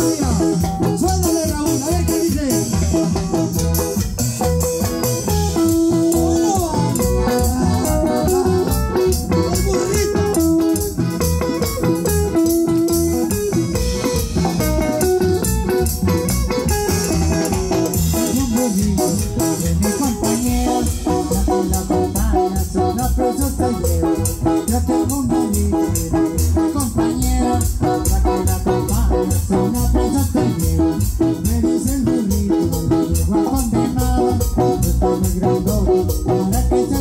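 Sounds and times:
live band playing dance tune: 0:00.0 - 0:37.0.

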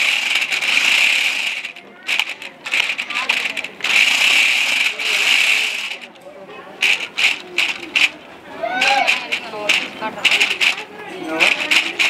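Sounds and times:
toy car motors whirring: 0:00.0 - 0:06.1, 0:06.8 - 0:12.0.

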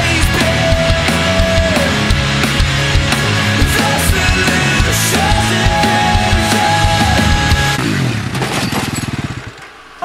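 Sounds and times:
quad engine running: 0:00.0 - 0:09.8.

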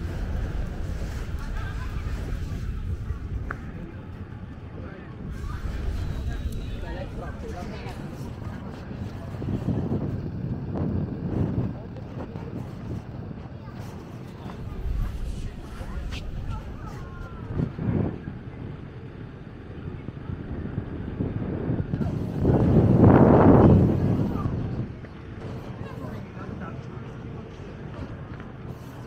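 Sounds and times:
indistinct voices: 0:00.0 - 0:20.5
steady low rumble: 0:00.0 - 0:29.0
wind on microphone: 0:00.0 - 0:29.0.

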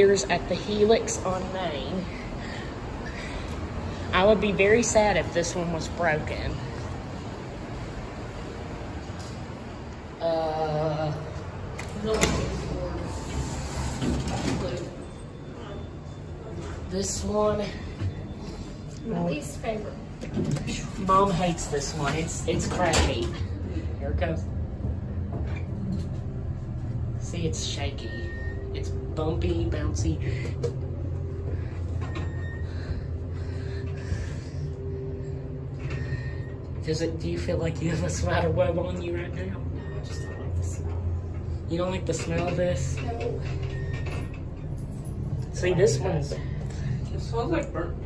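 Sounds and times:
steady low rumble: 0:00.0 - 0:48.0.

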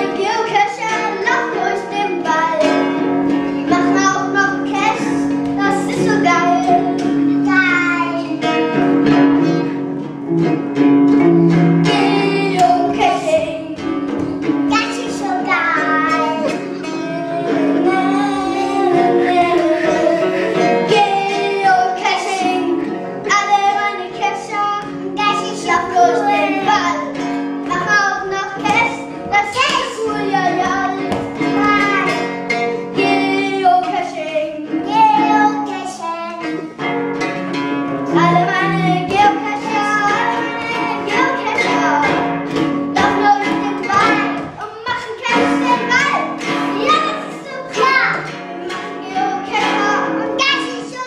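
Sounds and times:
acoustic guitars strumming: 0:00.0 - 0:51.0
young children singing: 0:00.0 - 0:51.0.

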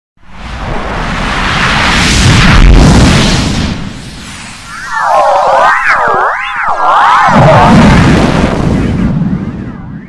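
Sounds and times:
distorted explosion-like rumble: 0:00.3 - 0:10.0.

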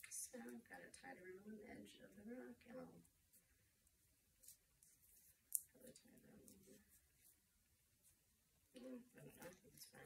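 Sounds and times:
hands tying string around rock: 0:03.3 - 0:05.8.

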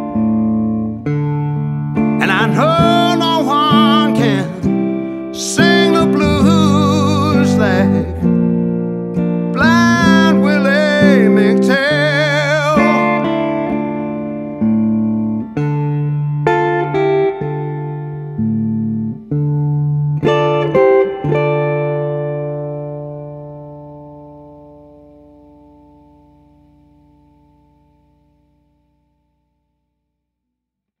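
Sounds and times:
guitar notes and chords: 0:00.0 - 0:29.8.

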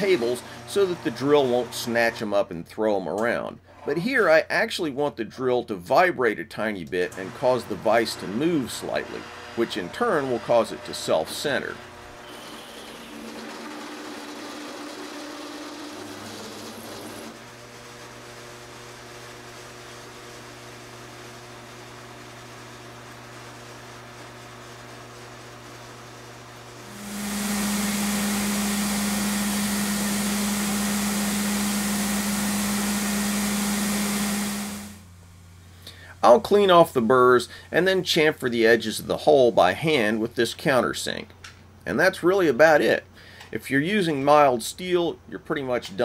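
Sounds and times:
drill press motor hum: 0:00.0 - 0:02.3, 0:06.9 - 0:35.7
loud whirring hiss: 0:26.8 - 0:38.4.

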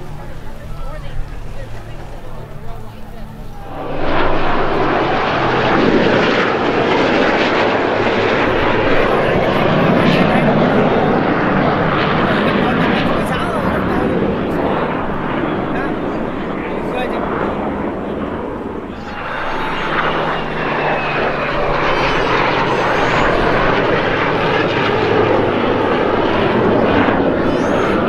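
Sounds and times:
jet aircraft engine noise: 0:00.0 - 0:28.0.

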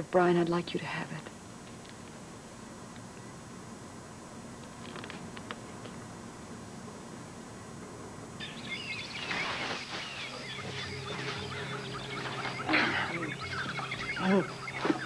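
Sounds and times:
steady low hum: 0:00.0 - 0:15.0
birds chirping and calling: 0:08.4 - 0:15.0.

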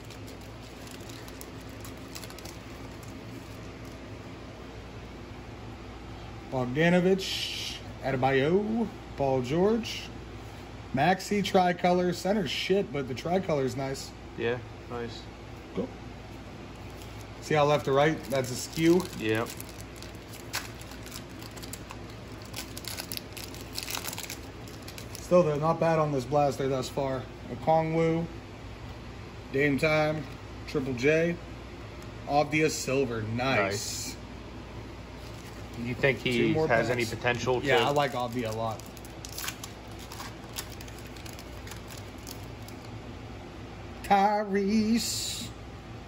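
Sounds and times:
foil wrapper crinkling and tearing: 0:00.0 - 0:04.0, 0:16.8 - 0:25.6, 0:35.2 - 0:36.1, 0:36.8 - 0:43.0
low steady hum: 0:00.0 - 0:46.0.

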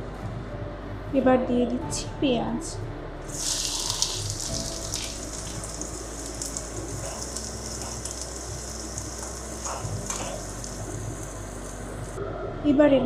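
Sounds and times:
onions sizzling in hot oil: 0:03.3 - 0:12.2.

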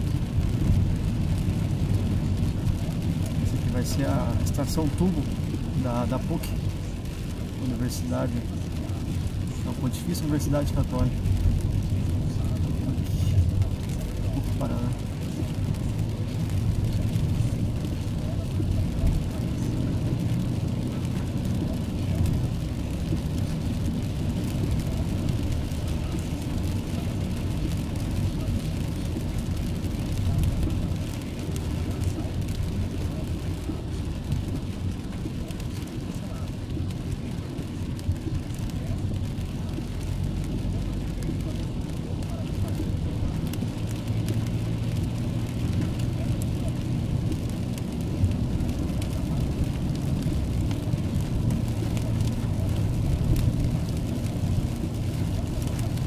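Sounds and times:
car engine and tyres rumbling: 0:00.0 - 0:56.0
rain on glass: 0:00.0 - 0:56.0
windscreen wiper: 0:00.0 - 0:56.0.

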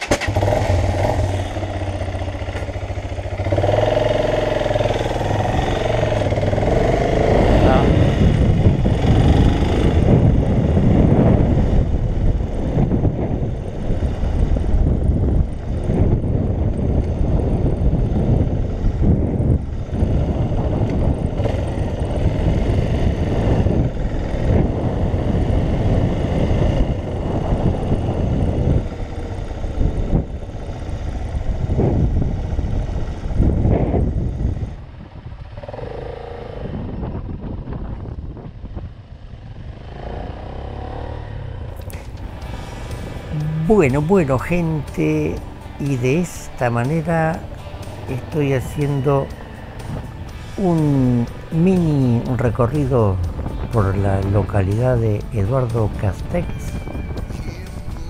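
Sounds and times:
motorcycle engine: 0:00.0 - 0:58.0
wind noise on microphone: 0:00.0 - 0:58.0.

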